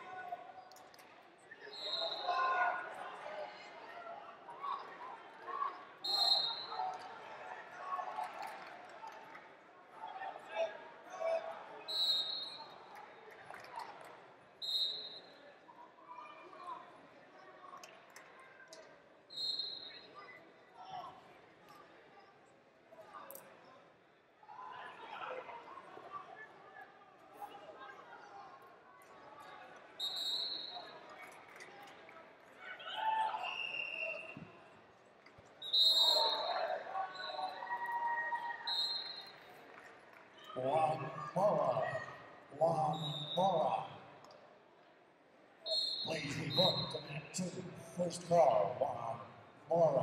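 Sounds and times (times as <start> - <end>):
indistinct voices and chatter: 0.0 - 50.0.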